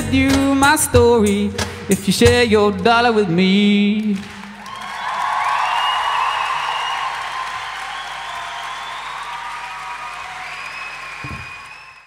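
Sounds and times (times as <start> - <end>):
audience applauding and cheering: 4.1 - 12.0.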